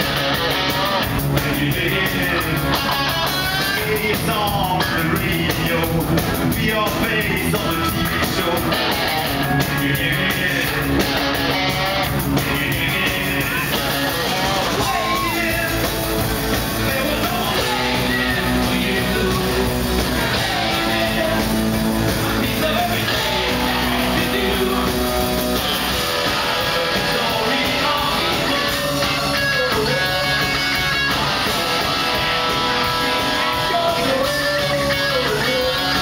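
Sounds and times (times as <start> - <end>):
live rock band playing: 0.0 - 36.0
person singing: 0.7 - 16.0, 16.8 - 32.4, 33.1 - 36.0.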